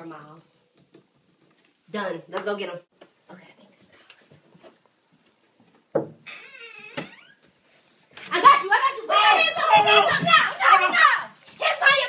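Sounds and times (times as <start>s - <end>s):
people shouting: 8.3s - 12.0s.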